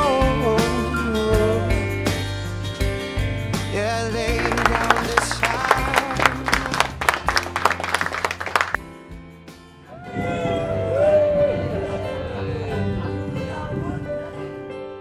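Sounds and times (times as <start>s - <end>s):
background music: 0.0s - 15.0s
crowd applauding: 4.3s - 8.8s.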